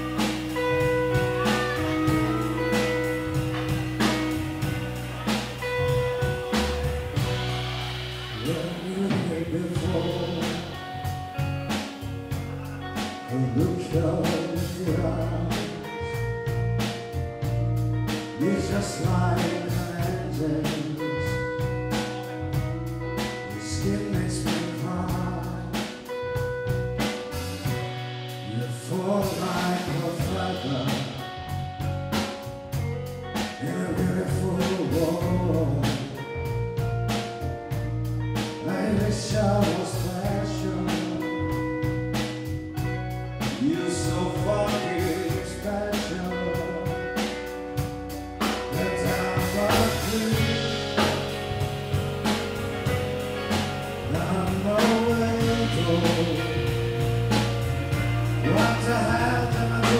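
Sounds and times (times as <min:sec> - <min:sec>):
man singing: 0:00.0 - 0:16.9, 0:18.1 - 0:26.4, 0:27.4 - 0:31.6, 0:33.4 - 0:36.5, 0:38.4 - 0:42.2, 0:43.4 - 0:51.4, 0:52.8 - 0:59.9
live band playing: 0:00.0 - 0:59.9.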